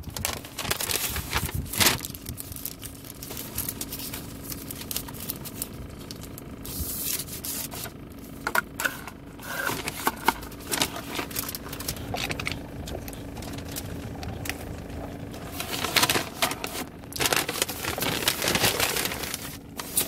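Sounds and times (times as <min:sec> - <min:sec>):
paper bag and cup handled: 0:00.0 - 0:20.0
steady low hum: 0:00.0 - 0:20.0.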